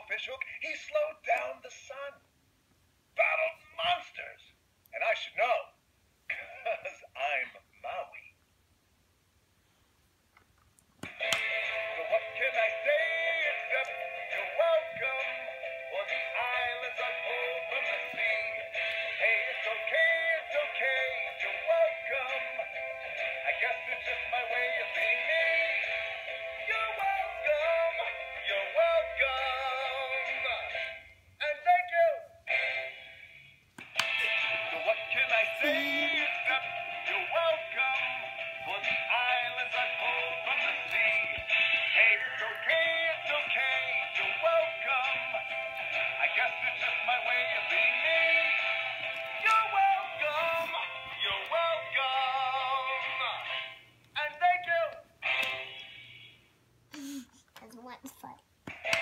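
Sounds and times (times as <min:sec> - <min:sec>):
toy speaker playing man singing: 0:11.2 - 0:33.2, 0:34.0 - 0:56.4.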